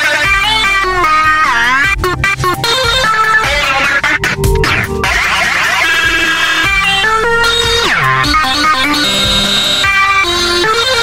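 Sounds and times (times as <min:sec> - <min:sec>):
electronic music with synthesizer: 0:00.0 - 0:11.0
synth note sliding down: 0:00.5 - 0:10.2.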